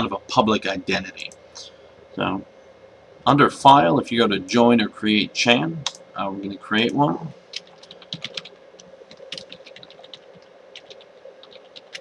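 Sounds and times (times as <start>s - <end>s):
typing on a keyboard: 7.6s - 8.5s, 9.1s - 12.0s.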